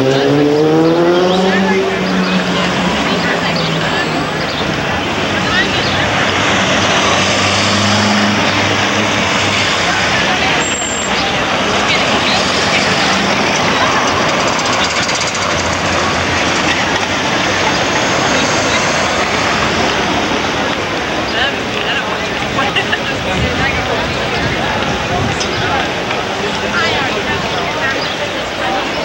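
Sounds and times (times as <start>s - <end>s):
crowd chatter: 0.0s - 29.0s
low vehicle engine hum: 0.0s - 29.0s
traffic: 0.0s - 29.0s.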